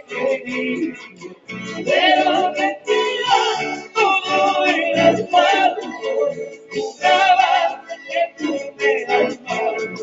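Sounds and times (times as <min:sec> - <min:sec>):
live band with lead singer: 0:00.0 - 0:10.0.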